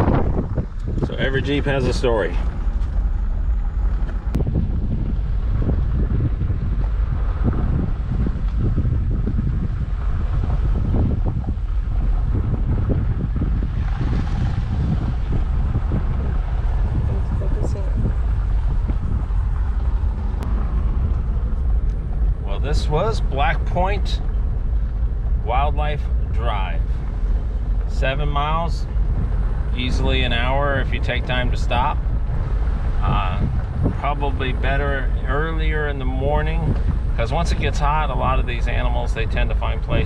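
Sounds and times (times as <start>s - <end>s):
car road rumble on gravel: 0.0s - 40.0s
wind buffeting microphone: 0.0s - 40.0s.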